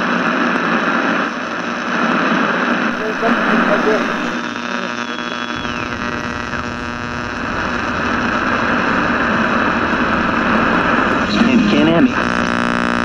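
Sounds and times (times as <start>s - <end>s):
electrical hum and hiss: 2.9s - 13.0s
tone sliding down: 5.6s - 12.4s.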